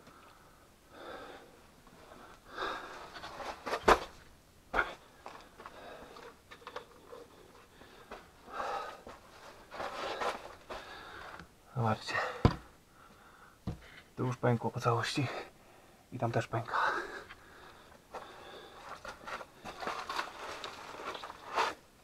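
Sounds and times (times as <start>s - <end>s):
breathing: 0.0s - 3.1s, 5.6s - 6.3s, 7.6s - 9.2s, 10.0s - 11.4s, 12.1s - 14.1s, 15.3s - 16.1s, 16.7s - 20.0s.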